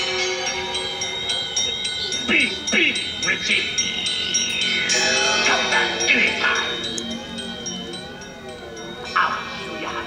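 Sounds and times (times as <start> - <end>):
chime-like bell tones: 0.0 - 10.0
sustained ringing notes: 0.0 - 10.0.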